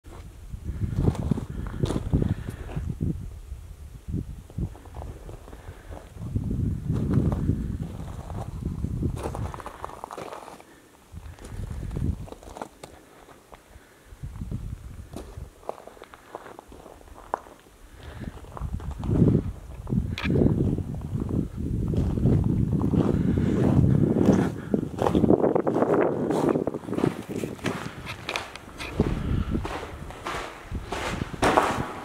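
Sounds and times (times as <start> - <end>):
footsteps on gravel trail: 0.1 - 2.9, 4.6 - 13.7, 14.4 - 32.0
wind buffeting microphone: 0.1 - 10.2, 11.1 - 12.6, 14.1 - 15.7, 16.7 - 32.0.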